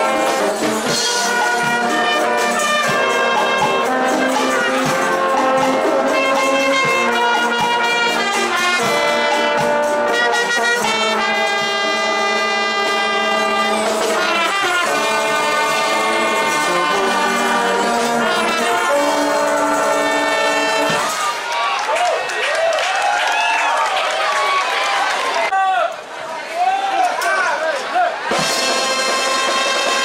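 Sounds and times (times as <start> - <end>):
brass band playing sustained chords: 0.0 - 21.4, 28.3 - 30.0.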